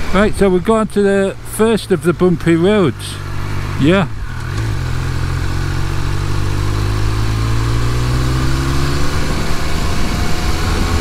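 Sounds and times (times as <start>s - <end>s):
motorcycle engine accelerating: 1.7s - 11.0s.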